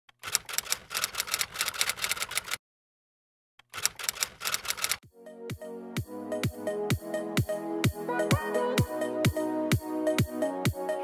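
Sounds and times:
typewriter key clicking: 0:00.2 - 0:02.6, 0:03.6 - 0:05.0
electronic music with a beat: 0:05.1 - 0:11.0.

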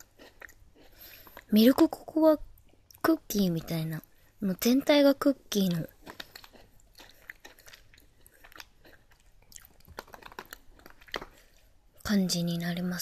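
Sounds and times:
chewing crunchy cookie: 0:00.0 - 0:12.1.

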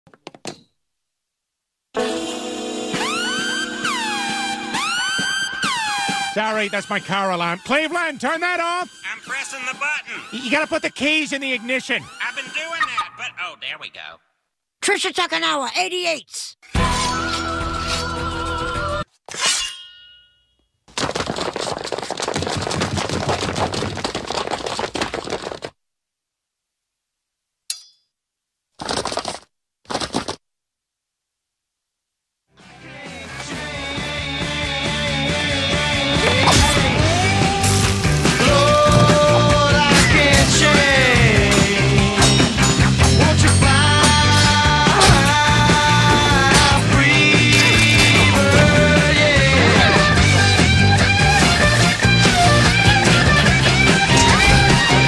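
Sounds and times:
car alarm swooping electronic tones: 0:03.0 - 0:07.9
ringing metallic clang: 0:19.5 - 0:20.7, 0:27.7 - 0:28.1
crashing and clattering: 0:36.3 - 0:49.5, 0:51.4 - 0:55.0.

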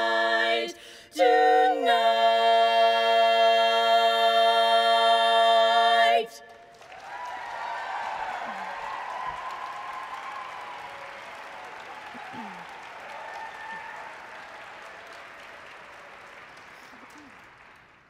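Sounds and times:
audience applauding and cheering: 0:06.5 - 0:18.0.

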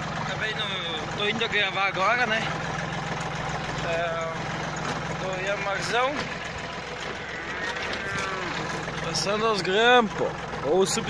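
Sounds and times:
tractor diesel engine running: 0:00.0 - 0:11.0.

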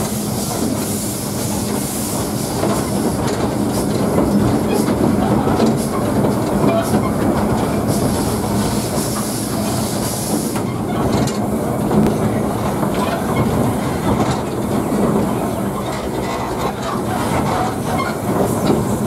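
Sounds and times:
steam hissing: 0:00.0 - 0:19.0
steam locomotive rumble and rattle: 0:00.0 - 0:19.0.

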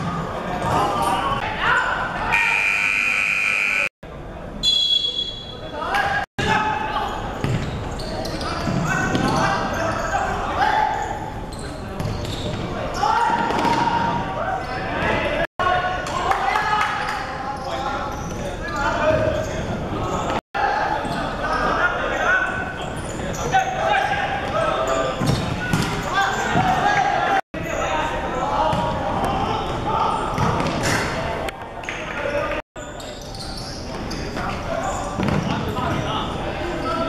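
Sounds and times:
players shouting in echoing hall: 0:00.4 - 0:03.9, 0:12.7 - 0:31.2.

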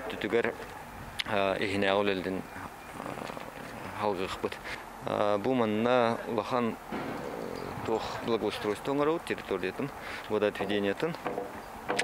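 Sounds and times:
steady low hum: 0:06.6 - 0:10.8
man speaking: 0:07.7 - 0:11.2.

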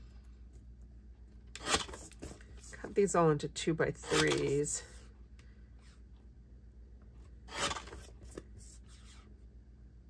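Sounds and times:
paper trimmer blade scraping: 0:01.6 - 0:02.3, 0:04.0 - 0:04.6, 0:07.5 - 0:08.2.

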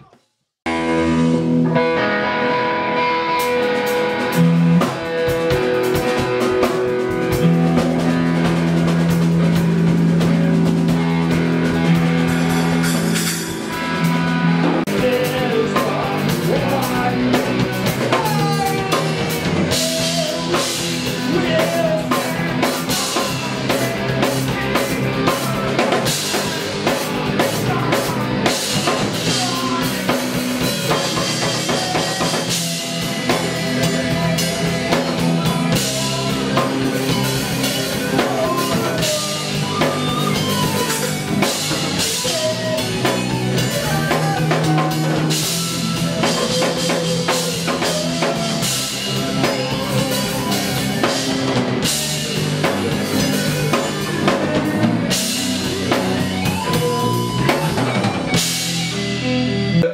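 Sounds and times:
rock band playing live: 0:00.0 - 0:59.9.

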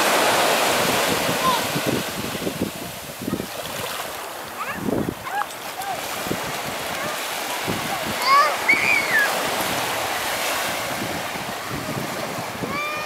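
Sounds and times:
waves washing onto beach: 0:00.0 - 0:13.0
child calling out: 0:07.9 - 0:09.3, 0:12.6 - 0:13.0.

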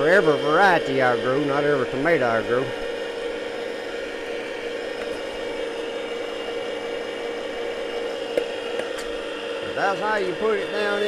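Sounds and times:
electric motor whirring hum: 0:00.0 - 0:11.0.

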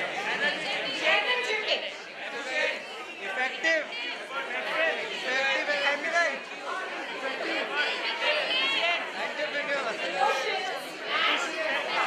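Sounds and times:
voices talking over one another: 0:00.0 - 0:12.0
woman speaking into a microphone: 0:00.9 - 0:02.0.

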